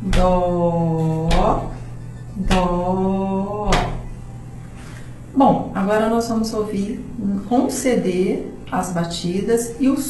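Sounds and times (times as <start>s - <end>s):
hand beating time: 0.0s - 4.2s.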